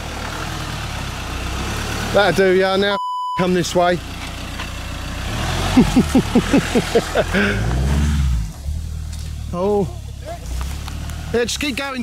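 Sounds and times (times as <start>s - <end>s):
van engine running: 0.0s - 12.0s
man laughing: 5.7s - 7.7s.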